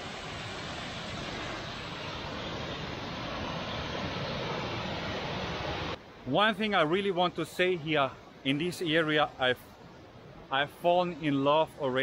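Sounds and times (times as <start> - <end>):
waterfall rushing: 0.0 - 11.4.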